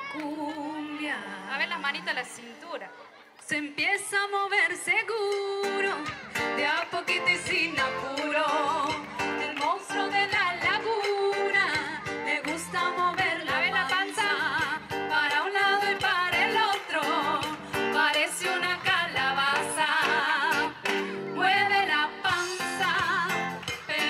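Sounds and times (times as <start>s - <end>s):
woman singing into a microphone: 0.0s - 2.5s, 3.4s - 24.0s
music with guitar: 4.7s - 24.0s.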